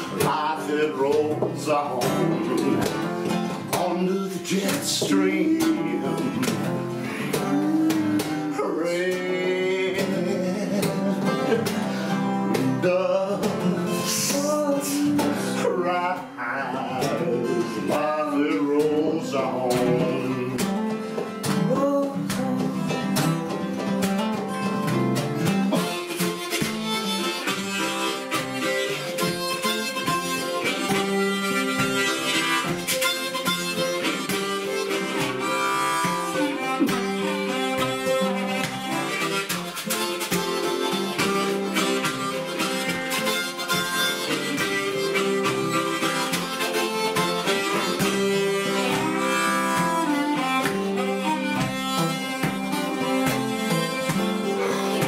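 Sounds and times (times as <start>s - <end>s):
harmonica: 0.0s - 55.0s
strummed acoustic guitars: 0.0s - 55.0s.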